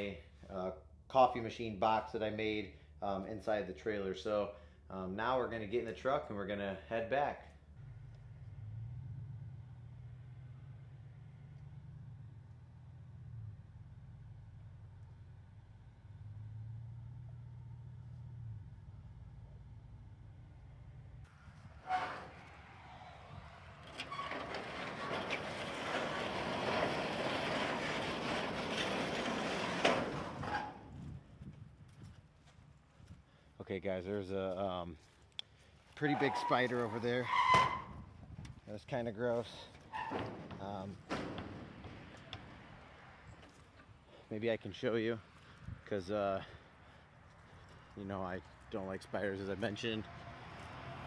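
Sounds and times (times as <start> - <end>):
pickup engine hum: 7.6 - 32.1.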